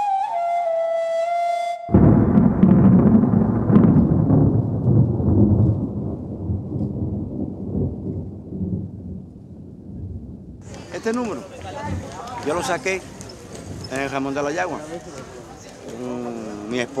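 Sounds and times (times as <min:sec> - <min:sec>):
thunder clap and rumble: 0:01.9 - 0:14.8.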